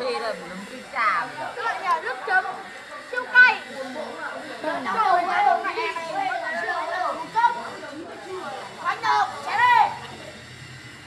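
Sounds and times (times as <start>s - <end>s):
overlapping indistinct chatter: 0.0s - 11.0s.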